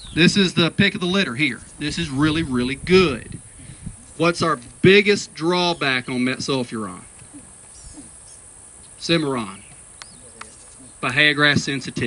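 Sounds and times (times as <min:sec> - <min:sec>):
faint bird chirps: 0:00.0 - 0:00.4, 0:07.2 - 0:11.2
steady high hiss: 0:00.0 - 0:12.0.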